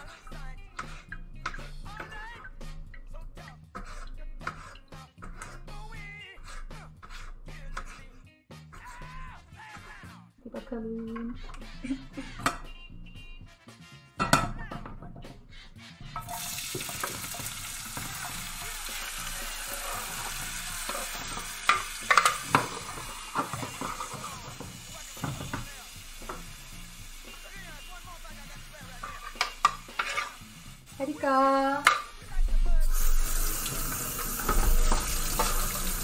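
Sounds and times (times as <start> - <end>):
utensils knocking and scraping: 0.0 - 2.2, 3.8 - 5.6, 11.1 - 12.6, 14.2 - 15.5, 16.1 - 26.6, 28.9 - 30.4, 31.8 - 32.3, 34.2 - 36.0
vegetables sizzling in frying pan: 16.2 - 31.3, 33.0 - 36.0.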